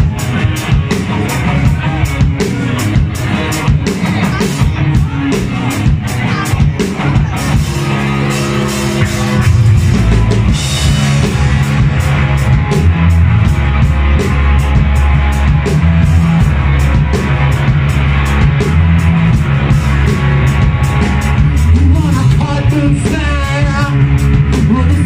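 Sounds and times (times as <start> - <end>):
drum kit beat on cymbals: 0.0 - 25.0
rock band playing: 0.0 - 25.0.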